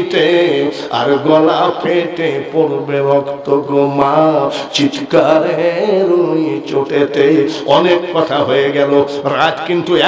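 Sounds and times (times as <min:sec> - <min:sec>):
man preaching in sing-song chant: 0:00.0 - 0:10.0.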